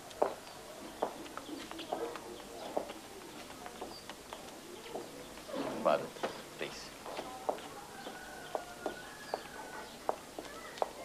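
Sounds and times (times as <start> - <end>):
footsteps on stone floor: 0.0 - 11.0
small birds chirping: 0.0 - 11.0
pigeons cooing: 0.1 - 10.1.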